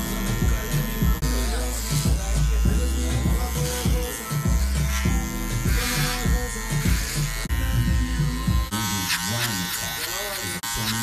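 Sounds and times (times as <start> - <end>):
music with heavy beat: 0.0 - 8.7
electric hair clippers buzzing: 0.0 - 11.0.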